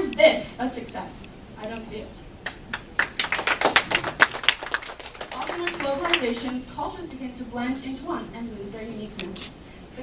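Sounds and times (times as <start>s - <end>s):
audience clapping: 2.4s - 6.7s.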